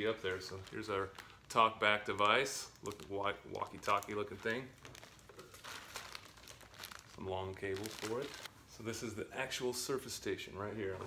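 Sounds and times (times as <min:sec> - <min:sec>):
plastic bag crinkling: 0:00.0 - 0:08.5.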